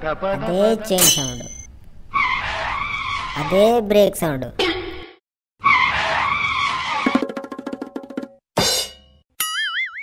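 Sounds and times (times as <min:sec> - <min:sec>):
tyre skid screech: 0:05.6 - 0:07.2.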